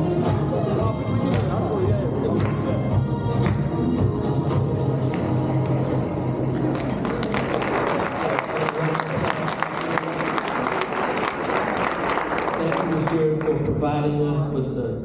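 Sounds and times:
background music: 0.0s - 15.0s
crowd applauding: 6.4s - 14.0s.

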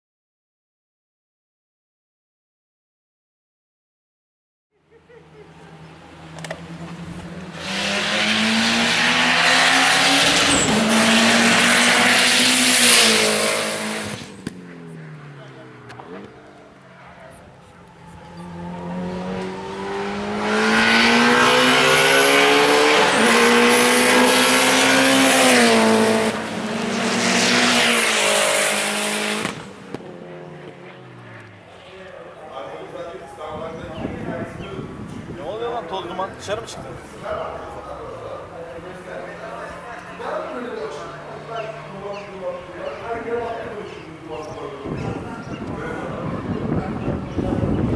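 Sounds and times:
race car engines revving: 4.8s - 47.9s.

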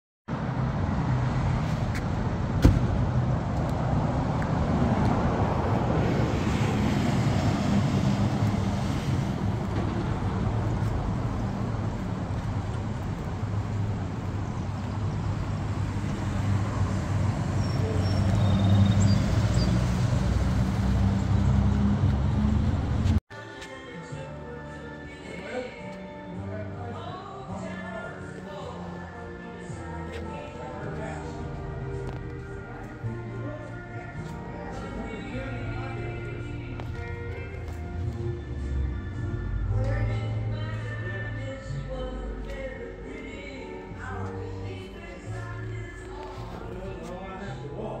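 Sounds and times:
traffic rumble: 0.3s - 23.2s, 28.7s - 48.0s.

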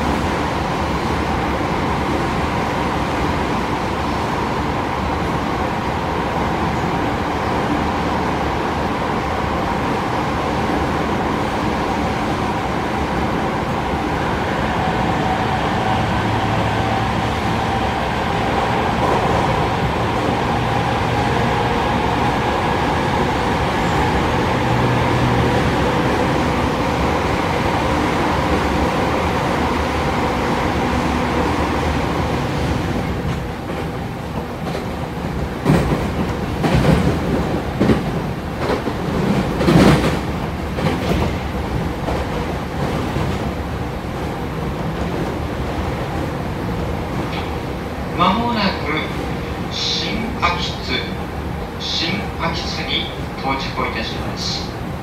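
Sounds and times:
train rumbling in tunnel: 0.0s - 55.0s.

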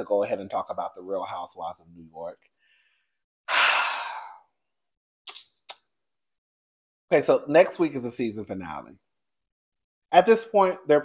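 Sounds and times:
man sighing: 3.5s - 4.4s.

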